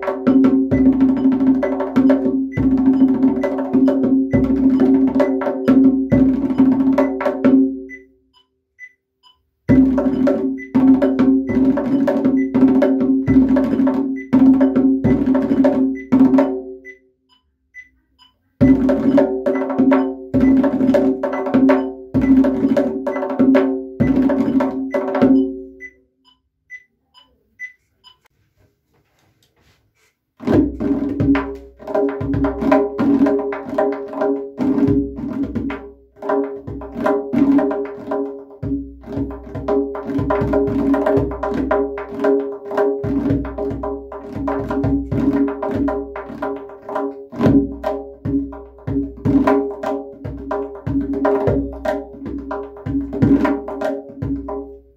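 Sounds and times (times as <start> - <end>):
goblet drum played by hand: 0.0 - 8.1, 9.7 - 17.0, 18.6 - 25.9, 30.4 - 54.9.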